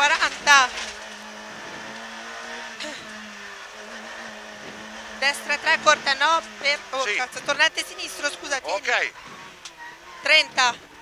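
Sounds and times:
car engine under load: 0.0s - 11.0s.

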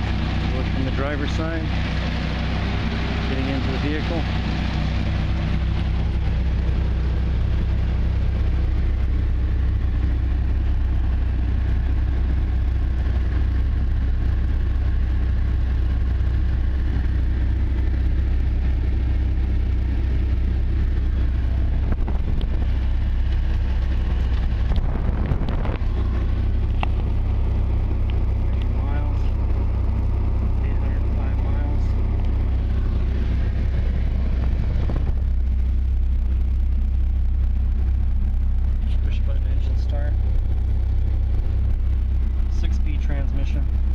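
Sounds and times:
car engine idling: 0.0s - 43.9s.

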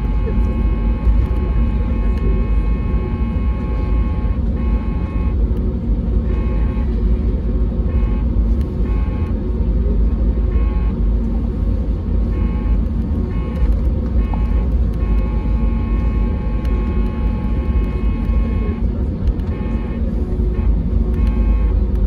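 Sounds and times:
aircraft cabin low rumble: 0.0s - 22.0s
high engine tone: 0.0s - 22.0s.

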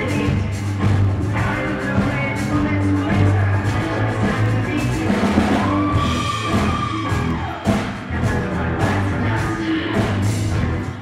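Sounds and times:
bass guitar: 0.0s - 11.0s
drum kit: 0.0s - 11.0s
electric guitar: 0.0s - 11.0s.

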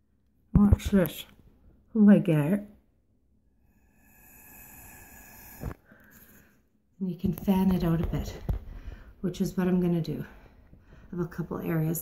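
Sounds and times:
breath blown through a straw: 3.6s - 6.6s.

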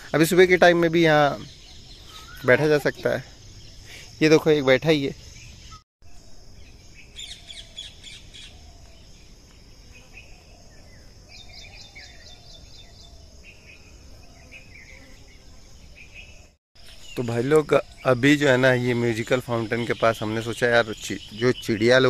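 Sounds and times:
birds chirping: 0.0s - 22.0s
high insect buzz: 1.4s - 17.2s.

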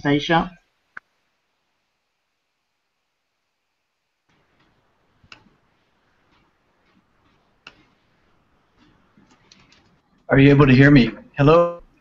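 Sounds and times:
faint room noise: 0.0s - 12.0s
sharp clicks: 4.5s - 5.6s, 6.3s - 7.9s.

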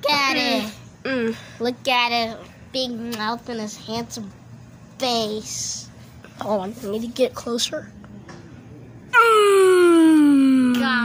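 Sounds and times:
person wailing: 9.1s - 11.0s.

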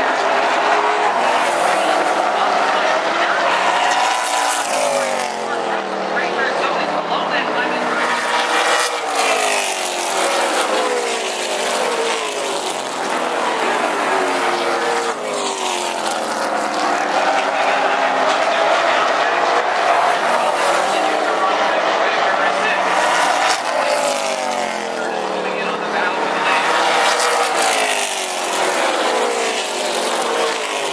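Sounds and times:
race car engines passing: 0.0s - 30.9s.

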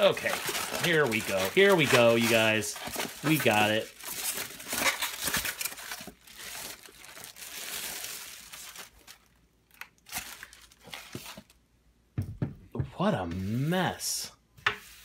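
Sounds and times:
plastic bag crinkling: 0.0s - 11.5s.

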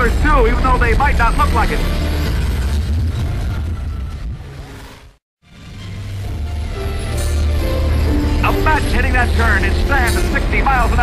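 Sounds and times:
racing car engines rumbling: 0.0s - 11.0s.

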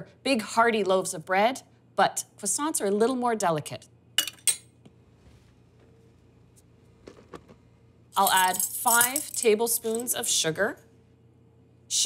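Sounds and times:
metal cups clinking on kitchenware: 8.2s - 10.2s.

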